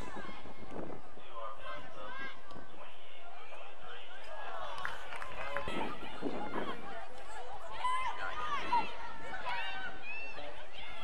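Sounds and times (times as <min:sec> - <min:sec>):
crowd of overlapping voices: 0:00.0 - 0:11.0.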